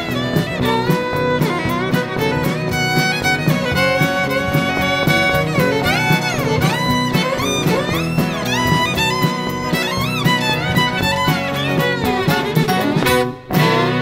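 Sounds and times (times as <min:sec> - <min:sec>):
country band accompaniment: 0:00.0 - 0:14.0
fiddle melody with sliding notes: 0:00.0 - 0:14.0.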